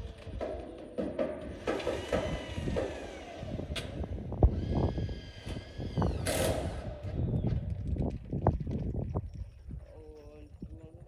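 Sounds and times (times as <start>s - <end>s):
metal sheets knocking and rattling: 0.4s - 2.4s
power drill motor whining: 1.8s - 7.7s.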